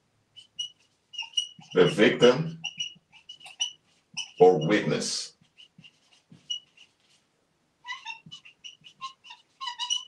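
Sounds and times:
marker squeaking on whiteboard: 0.3 - 10.0.

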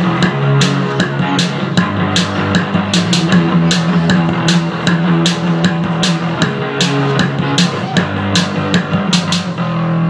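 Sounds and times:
drum and cymbal hits: 0.0 - 9.6.

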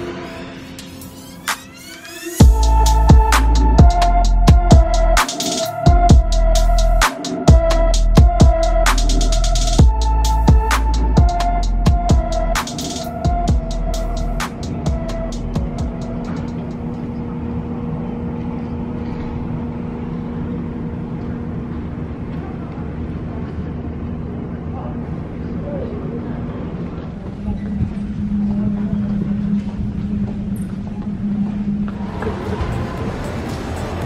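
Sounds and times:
jet engines droning: 0.0 - 34.0.

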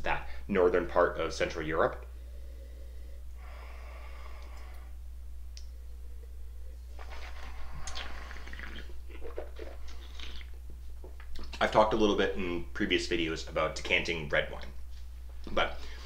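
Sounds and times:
low electrical hum: 0.0 - 16.0
wet mouth clicks and swishing: 7.0 - 10.6.

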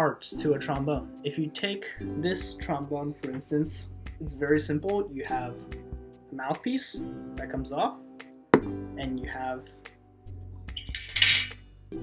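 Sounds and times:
brass parts clinking and scraping: 10.9 - 11.6.

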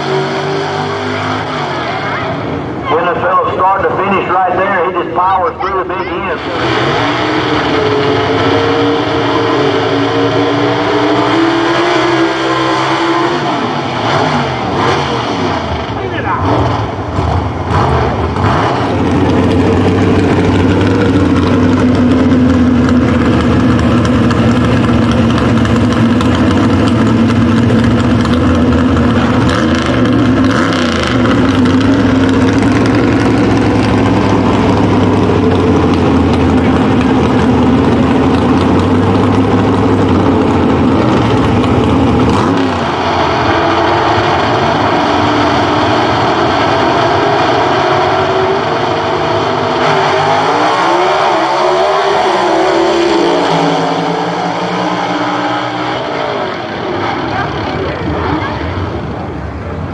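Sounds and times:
drag car engines: 0.0 - 59.9.

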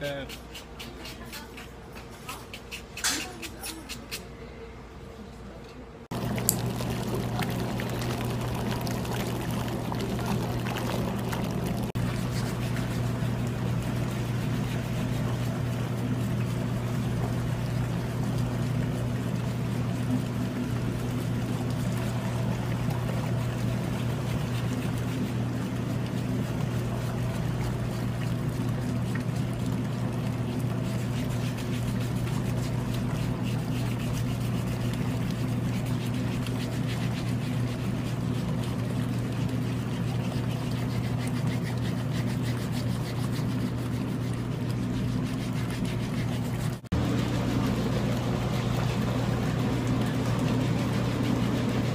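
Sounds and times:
pump motor humming: 6.1 - 51.9
water churning: 6.1 - 51.9.

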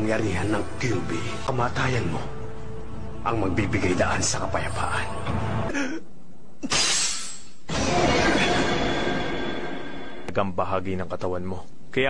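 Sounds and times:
background music: 0.0 - 6.2, 7.7 - 10.5.

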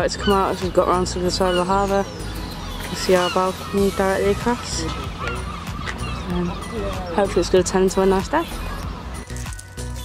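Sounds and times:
gulls crying: 0.0 - 10.0.

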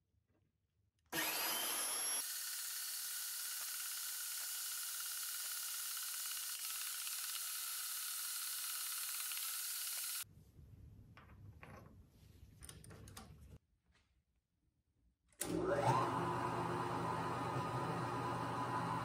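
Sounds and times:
bandsaw whining: 1.1 - 10.2
saw blade cutting metal: 1.2 - 10.2.

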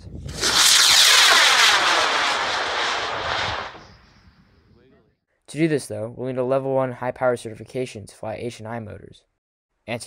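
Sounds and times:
model rocket motor hissing: 0.3 - 4.0.

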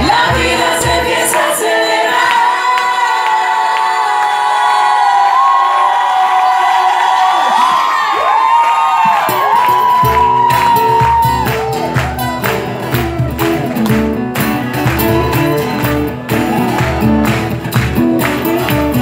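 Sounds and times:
band bass and drums: 0.0 - 1.3, 10.0 - 19.0
audience cheering and singing along: 0.0 - 19.0.

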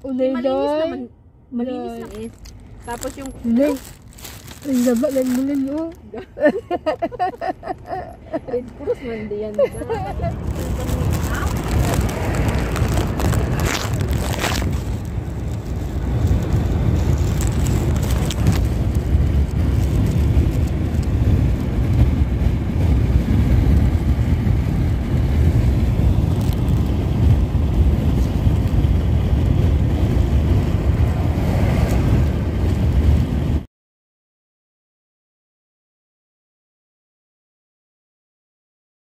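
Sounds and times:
road and engine rumble in car: 0.0 - 33.7.

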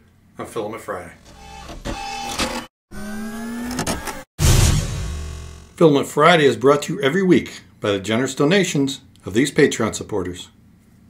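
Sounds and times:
machine-like whine rising in pitch: 2.4 - 5.8
short noisy burst: 4.4 - 5.8.

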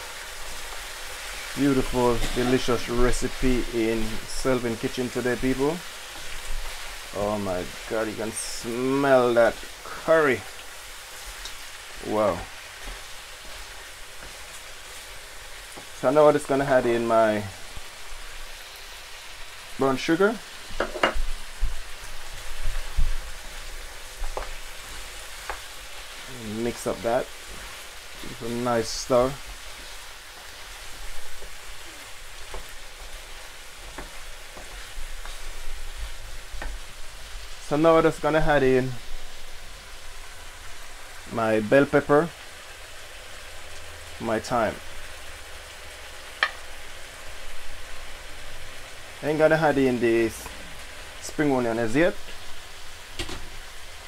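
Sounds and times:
chicken sizzling in a wok: 0.0 - 54.0.

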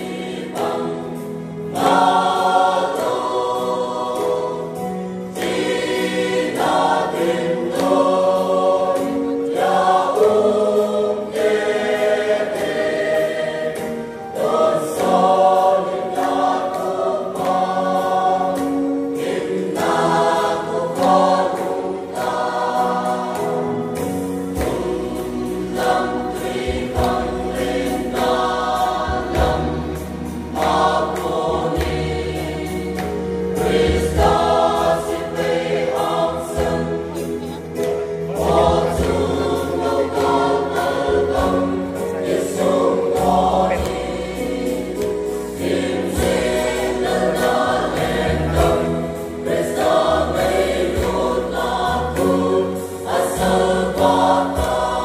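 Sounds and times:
mixed choir singing gospel: 0.0 - 55.0.

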